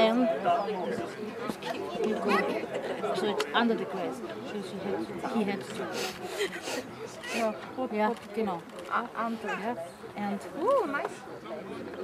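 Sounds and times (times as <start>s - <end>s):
people talking: 6.7s - 12.0s.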